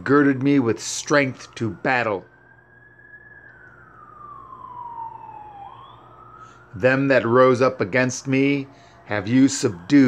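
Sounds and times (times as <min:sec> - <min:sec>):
siren wailing: 0:00.0 - 0:10.0.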